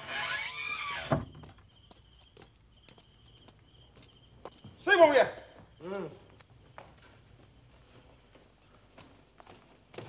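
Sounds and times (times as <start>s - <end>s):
faint high chirping tone: 1.3s - 4.9s.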